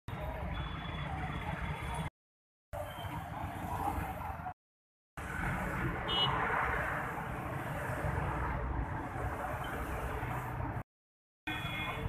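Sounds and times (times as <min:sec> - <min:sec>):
road traffic noise: 0:00.1 - 0:04.6, 0:05.2 - 0:10.9, 0:11.5 - 0:12.0.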